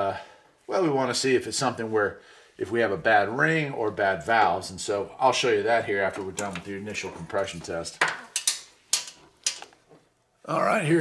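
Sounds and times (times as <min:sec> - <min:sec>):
hose fittings clicking and knocking: 0:06.0 - 0:10.1.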